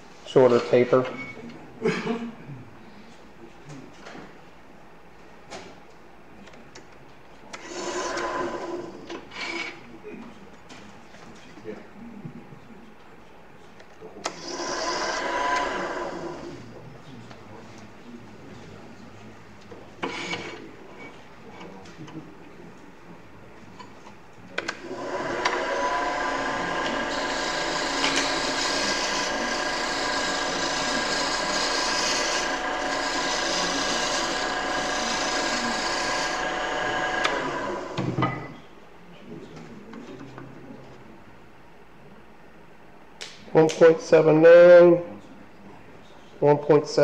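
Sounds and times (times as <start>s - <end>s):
turning tool rasping cut: 7.6s - 9.8s, 14.3s - 16.7s, 24.7s - 38.1s
wood lathe whine: 7.6s - 9.8s, 14.2s - 16.8s, 24.7s - 38.6s.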